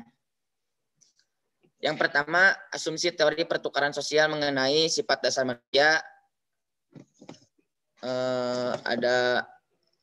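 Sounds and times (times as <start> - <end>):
man speaking: 1.8 - 6.3, 8.0 - 9.7.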